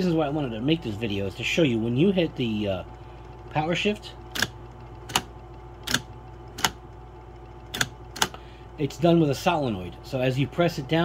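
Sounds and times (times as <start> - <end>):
typewriter solenoid clicks: 4.3 - 6.8, 7.7 - 8.4.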